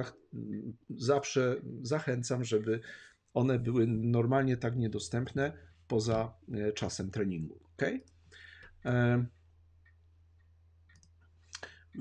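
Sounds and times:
faint clicks: 9.8 - 12.0.

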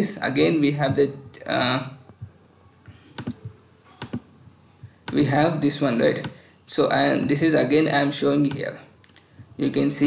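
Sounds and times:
computer input clicks: 2.9 - 4.3, 4.9 - 5.3.

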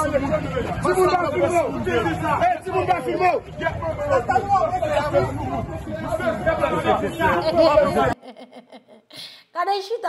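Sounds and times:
people talking over one another: 0.0 - 8.2
street noise: 0.0 - 10.0.

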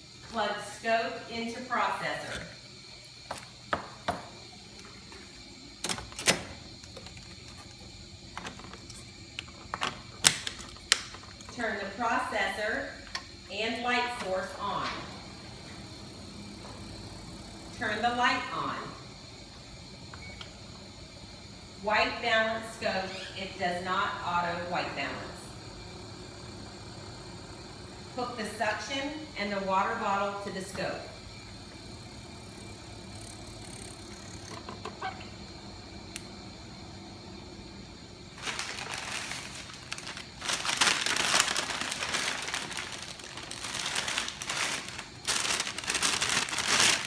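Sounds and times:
equipment cooling fans humming: 0.0 - 47.0.

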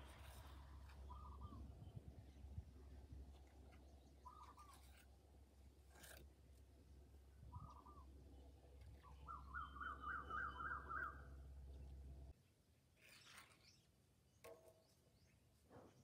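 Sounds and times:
low steady rumble: 0.0 - 12.4
faint bird calls: 0.8 - 2.4, 3.8 - 5.1, 7.4 - 11.4.

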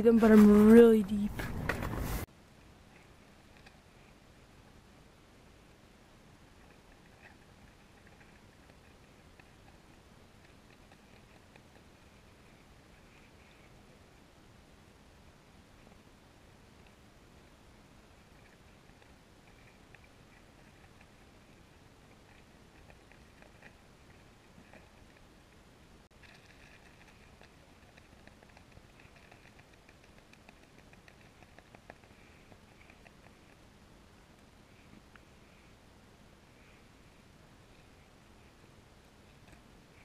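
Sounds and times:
low hiss: 0.0 - 40.0.

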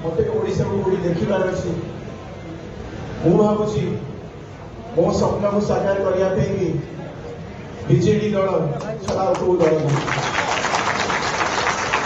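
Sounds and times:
crowd applauding: 9.1 - 12.0.

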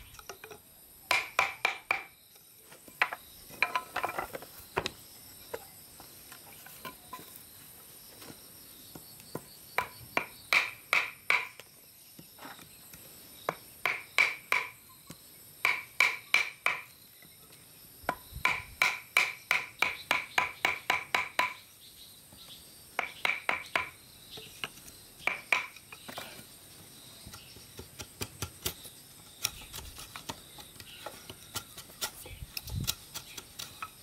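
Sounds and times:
insects droning: 0.0 - 34.0.

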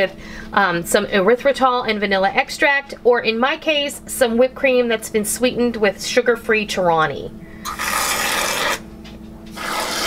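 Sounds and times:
spatula scraping cream into mugs: 9.5 - 10.0.

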